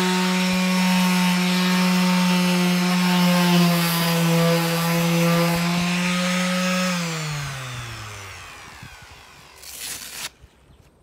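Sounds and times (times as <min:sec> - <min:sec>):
sheet sander motor winding down: 0:00.0 - 0:10.4.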